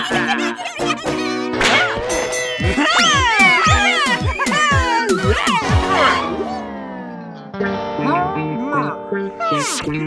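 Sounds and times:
cartoon character laughing: 0.0 - 6.6
background music with low pulse: 0.2 - 10.0.

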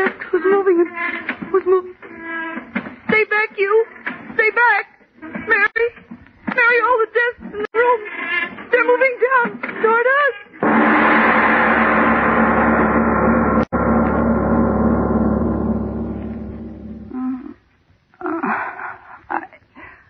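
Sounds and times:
gong-like swell: 13.2 - 17.2.

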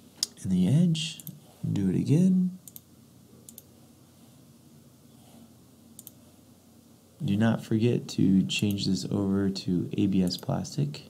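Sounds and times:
faint room hiss: 0.0 - 11.0
computer mouse clicks: 2.6 - 2.9, 3.5 - 3.7, 6.0 - 6.2.

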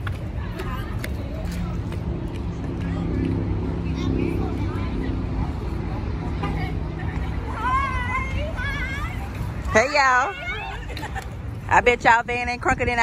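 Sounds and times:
group chattering: 0.0 - 11.9
vehicle engine hum: 0.0 - 13.0.

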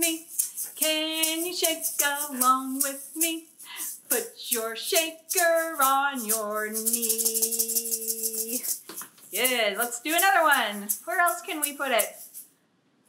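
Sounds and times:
woman singing unaccompanied: 0.0 - 8.8, 9.4 - 12.2
plastic egg shaker: 0.0 - 12.5.

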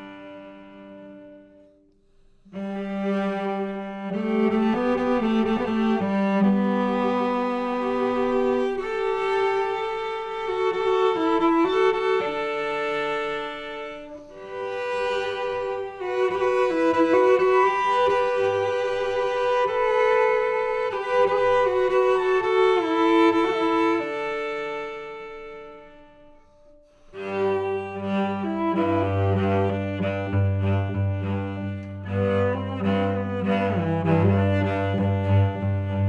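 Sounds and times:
solo cello playing slow air: 0.0 - 36.0.

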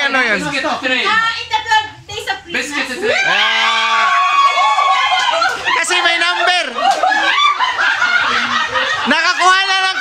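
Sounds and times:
people talking excitedly: 0.0 - 10.0
group of people laughing: 4.6 - 10.0.

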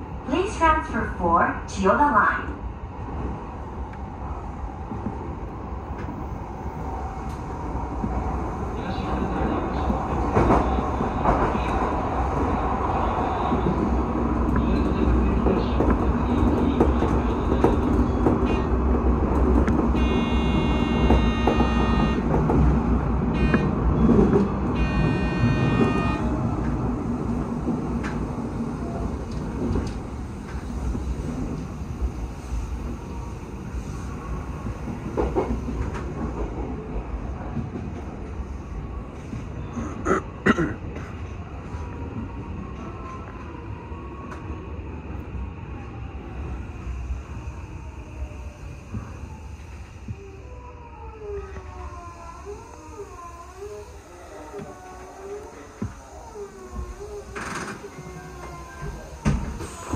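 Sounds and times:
train rumble: 0.0 - 59.9.

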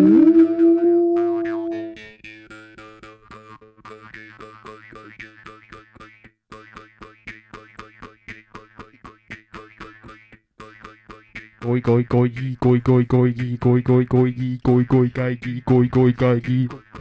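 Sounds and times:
twanging jaw harp drone: 0.0 - 2.0
clicking beatbox beat: 3.0 - 17.0
deep beatboxed bass: 11.6 - 17.0.

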